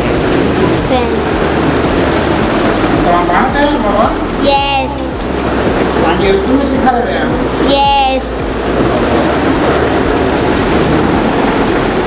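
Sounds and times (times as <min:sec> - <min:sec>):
loud steady rushing din: 0:00.0 - 0:12.0.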